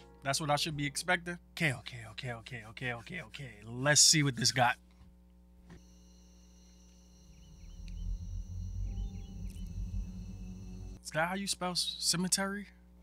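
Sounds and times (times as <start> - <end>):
cricket-like chirring: 5.8 - 11.0
low drone: 6.8 - 11.0.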